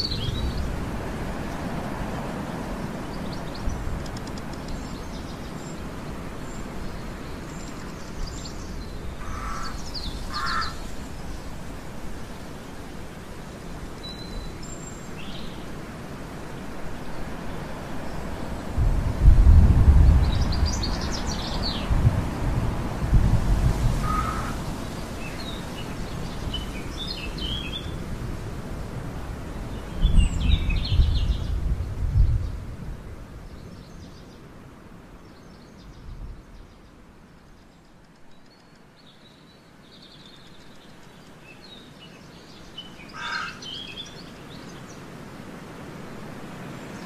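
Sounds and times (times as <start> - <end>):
outdoor background noise: 0.0 - 47.0
birds chirping: 2.5 - 11.7, 35.2 - 45.2.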